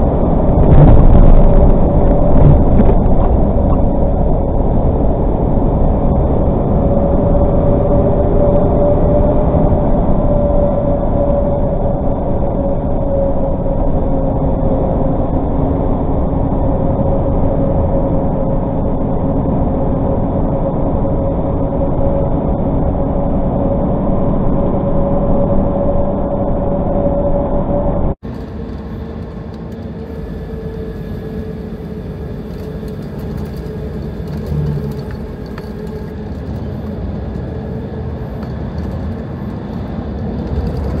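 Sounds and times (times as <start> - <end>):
steady hum: 0.0 - 41.0
truck engine and road drone: 0.0 - 41.0
vehicle and traffic noise: 26.6 - 41.0.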